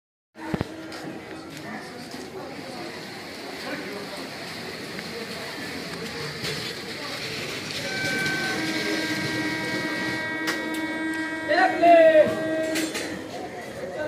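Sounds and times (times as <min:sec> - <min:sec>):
crowd chatter: 0:00.4 - 0:14.0
train rumble: 0:00.4 - 0:14.0.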